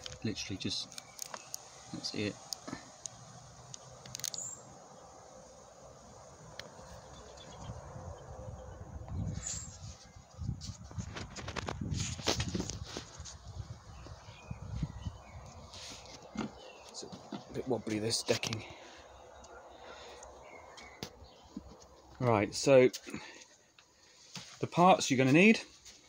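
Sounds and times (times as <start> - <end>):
camera handling noise: 2.5 - 4.5.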